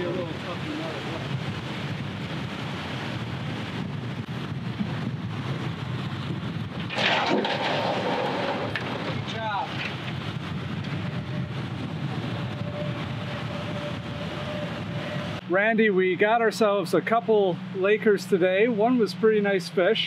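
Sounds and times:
boat motor rumbling: 0.0 - 20.0.

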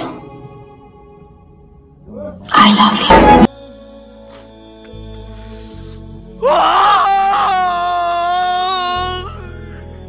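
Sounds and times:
man wailing: 6.4 - 9.4.

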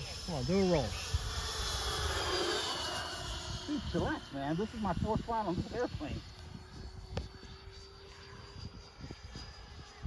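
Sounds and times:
electric ducted fan jet whine: 0.0 - 10.0.

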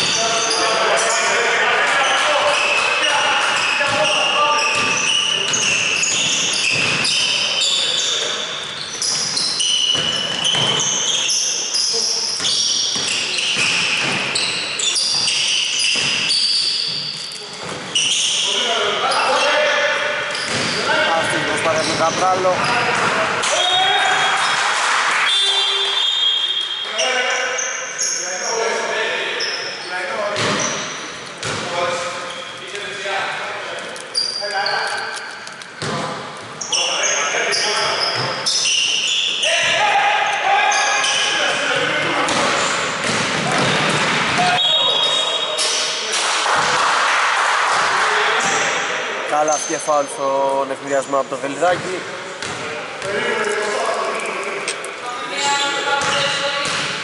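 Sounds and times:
basketball bouncing on wooden court: 3.9 - 7.3, 31.4 - 31.7, 42.3 - 44.5, 51.8 - 52.7, 56.0 - 57.0.

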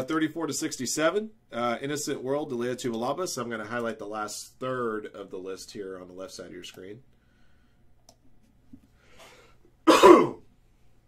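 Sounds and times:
faint breath: 7.1 - 8.0, 8.8 - 9.7
man clearing throat: 9.8 - 10.5.

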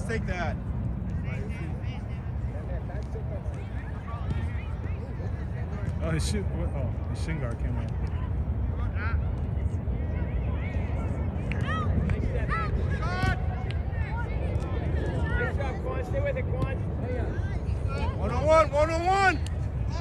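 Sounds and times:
people shouting and calling: 11.5 - 16.2, 17.2 - 20.0.

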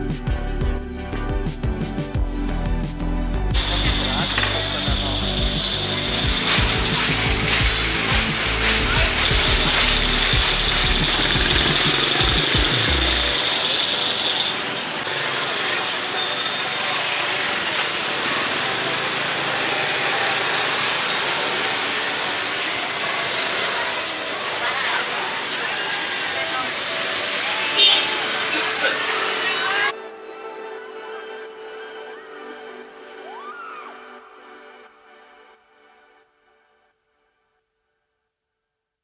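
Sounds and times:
steady high whine: 3.5 - 18.1
busy street noise: 3.5 - 33.8
motorbike engines passing: 3.6 - 29.9.

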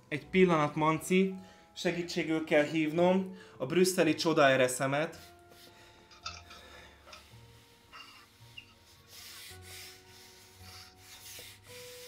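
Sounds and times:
plastic pipe rubbing and scraping: 7.1 - 12.0.

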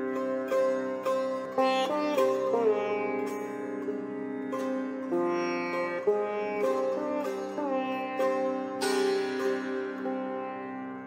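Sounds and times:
sitar playing slow melody: 0.0 - 11.0.

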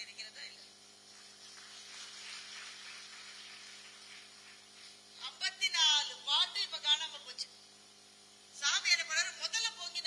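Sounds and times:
audience applauding: 1.4 - 4.7.

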